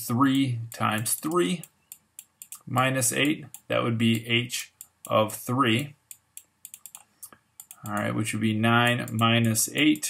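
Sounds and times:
man speaking: 0.0 - 1.7, 2.6 - 6.0, 7.8 - 10.0.

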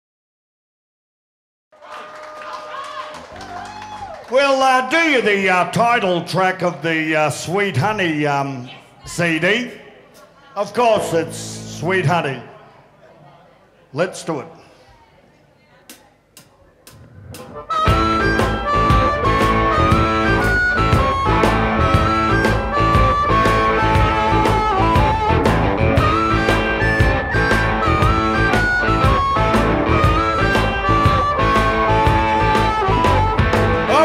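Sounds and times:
live rock band playing: 16.9 - 34.0.

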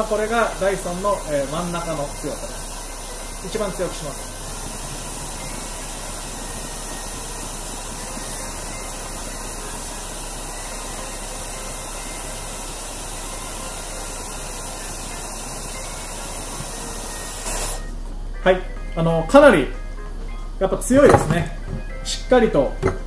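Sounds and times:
gas burner flame hiss: 0.0 - 18.0
electric fan blowing: 0.0 - 23.0.

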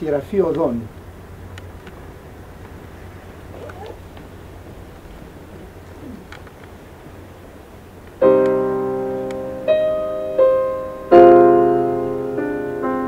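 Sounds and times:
steady low hum: 0.0 - 13.0
faint calls or murmurs: 2.9 - 6.6
faint clicks: 6.2 - 6.8.

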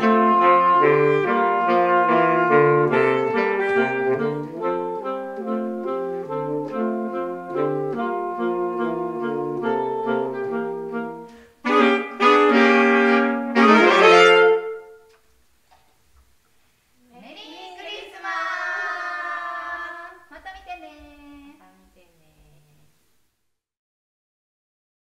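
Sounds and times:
saxophone trio playing: 0.0 - 15.2
people cheering: 17.3 - 20.3.

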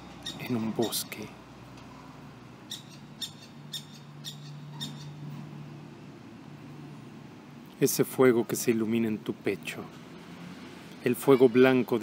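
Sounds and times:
bird chirping: 0.0 - 0.9, 2.6 - 5.3.

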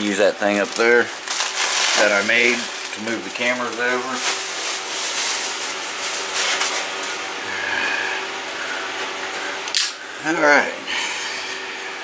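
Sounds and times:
hands rustling packing materials: 0.1 - 7.2.

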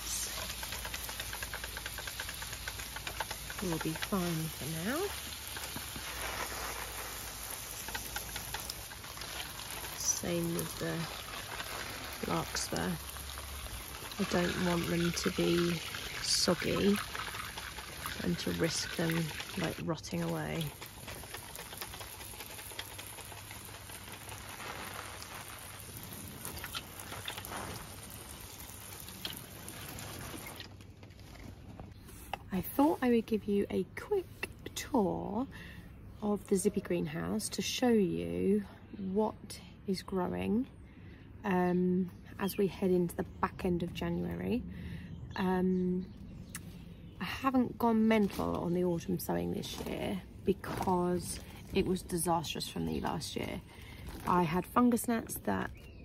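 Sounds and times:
pressure sprayer hissing: 0.0 - 17.0
spray bottle misting hiss: 5.6 - 8.8.

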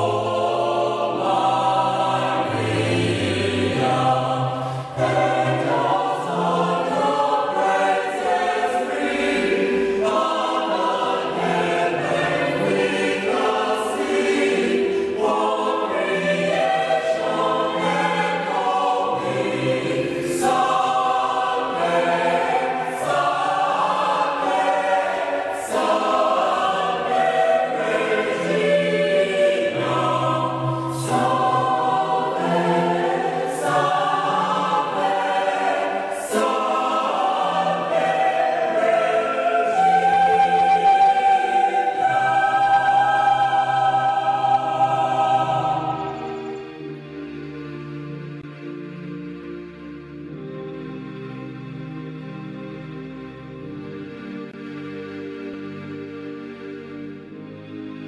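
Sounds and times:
church choir singing a hymn: 0.0 - 58.0.

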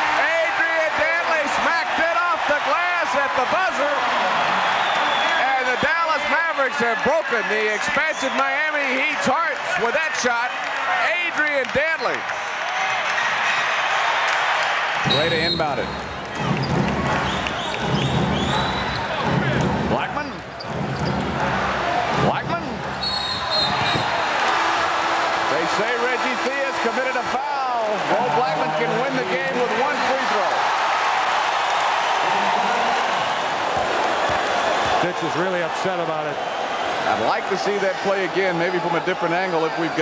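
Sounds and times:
arena crowd noise: 0.0 - 40.0.

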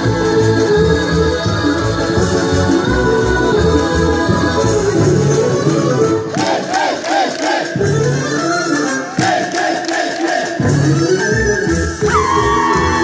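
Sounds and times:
folk dance music: 0.0 - 13.0
dancers shouting rhythmic cries: 6.2 - 13.0.

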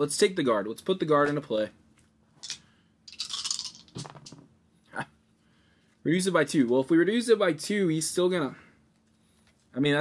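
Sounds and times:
game piece scraping: 2.4 - 4.4.

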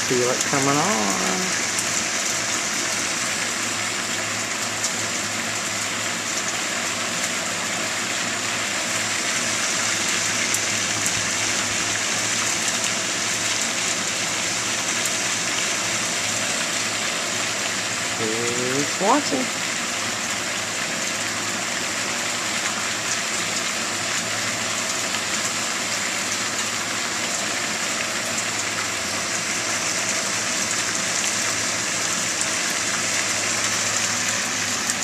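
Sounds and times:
rushing water: 0.0 - 35.0.

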